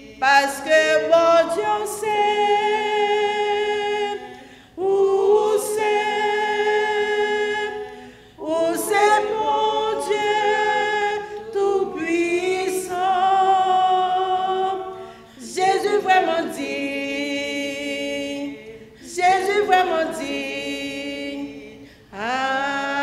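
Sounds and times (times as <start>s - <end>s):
woman singing a hymn: 0.0s - 23.0s
woman breathing: 4.3s - 4.8s, 7.9s - 8.4s.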